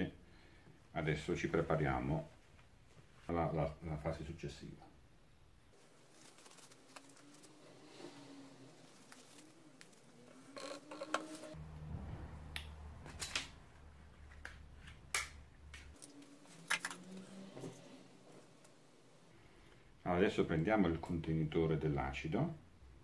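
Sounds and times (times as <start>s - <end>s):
quiet rustling: 5.7s - 11.6s.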